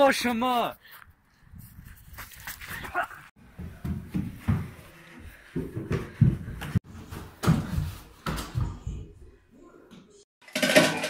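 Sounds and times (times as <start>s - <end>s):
running footsteps on grass: 1.0s - 6.8s.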